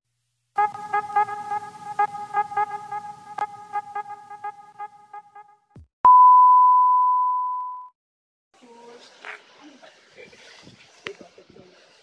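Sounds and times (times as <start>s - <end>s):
pure test tone beep: 6.1s - 8.0s.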